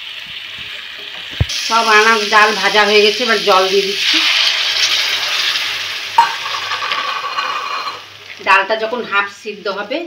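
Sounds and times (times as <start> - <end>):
loud sizzling in a wok: 0.0 - 10.0.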